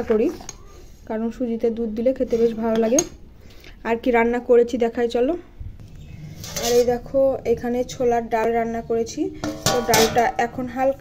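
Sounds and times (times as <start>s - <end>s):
woman talking: 0.0s - 0.4s, 1.1s - 3.2s, 6.6s - 11.0s
metal dishes clinking: 6.3s - 7.0s, 9.4s - 10.6s.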